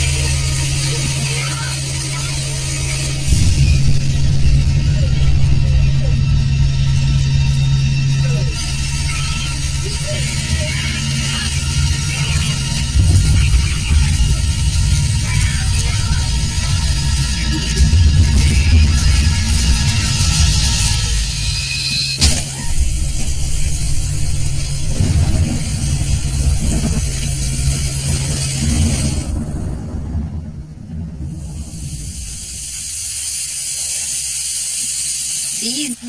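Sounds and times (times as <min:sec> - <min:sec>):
deep bass drone: 0:00.0 - 0:33.8
sharp hit: 0:01.8 - 0:33.2.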